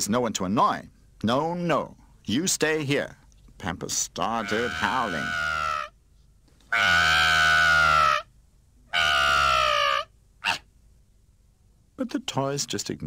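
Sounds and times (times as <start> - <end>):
cartoon baby wailing: 4.4 - 5.9.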